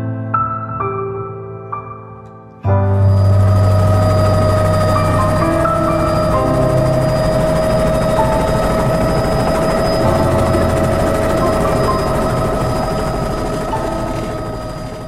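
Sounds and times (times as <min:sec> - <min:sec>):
helicopter cabin whine: 0:02.9 - 0:15.0
helicopter rotor beating: 0:02.9 - 0:15.0.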